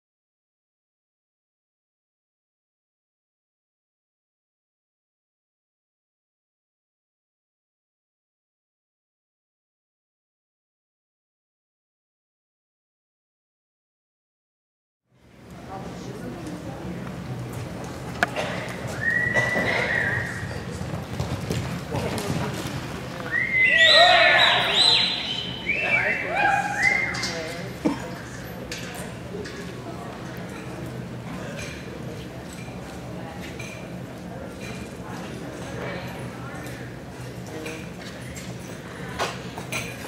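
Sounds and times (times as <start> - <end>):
horse hoofbeats on soft dirt: 20.2 - 23.1.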